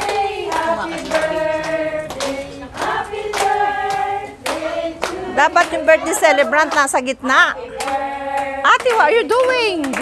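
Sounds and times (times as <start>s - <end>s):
hand claps in time: 0.0s - 5.8s, 7.8s - 10.0s
voices singing together: 0.0s - 10.0s.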